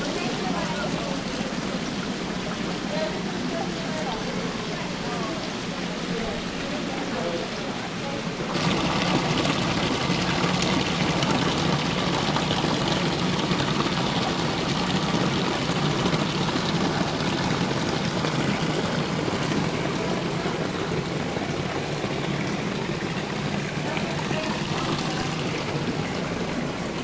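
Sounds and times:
waterfall splashing into pool: 8.4 - 27.0.

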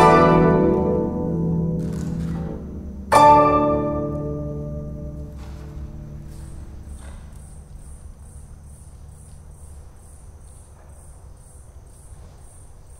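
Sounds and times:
guzheng notes: 0.0 - 8.3
cricket chirping: 0.0 - 12.9.

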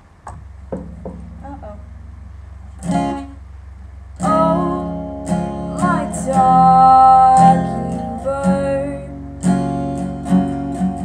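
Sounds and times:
acoustic guitar strummed: 0.7 - 3.5, 4.1 - 11.0.

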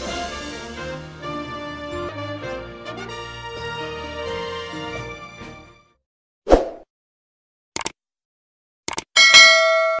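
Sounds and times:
quick clicks: 7.8 - 8.0, 8.9 - 9.1.

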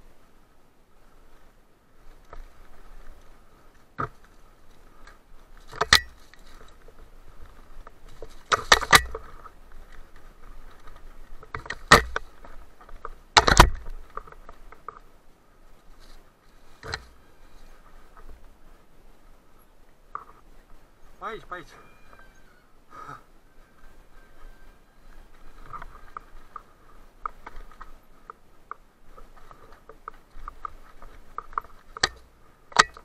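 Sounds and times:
bike tyres on dirt trail: 0.0 - 33.0
bike rattling: 1.0 - 22.6, 23.6 - 33.0.

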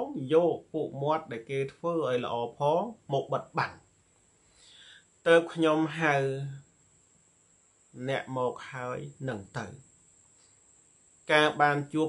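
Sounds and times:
man speaking: 0.0 - 3.8, 5.3 - 6.6, 8.0 - 9.8, 11.3 - 12.0.

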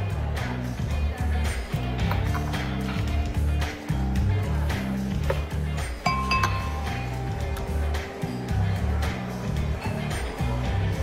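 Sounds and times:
background music with low beat: 0.0 - 11.0
bottle clinking on wine glass: 6.0 - 7.2.

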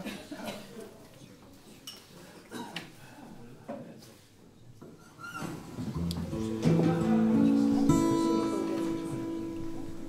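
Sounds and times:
low murmur of voices: 0.0 - 10.0.

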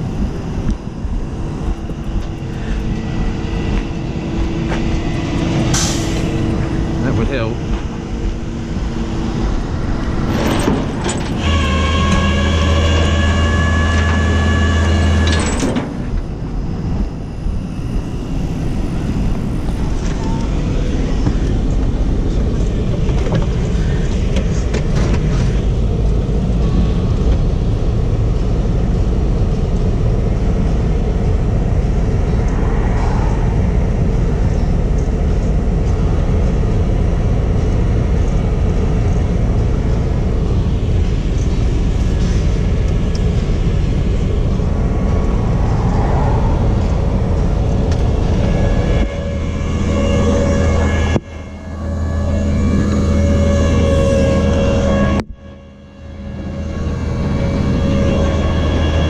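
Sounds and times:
car engine rumbling: 0.0 - 59.0.

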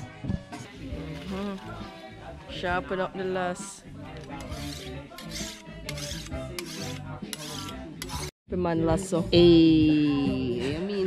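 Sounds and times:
file rasping on blade: 4.3 - 8.3.

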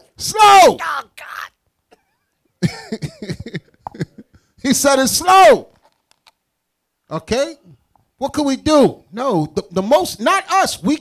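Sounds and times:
man laughing into microphone: 2.0 - 4.5.

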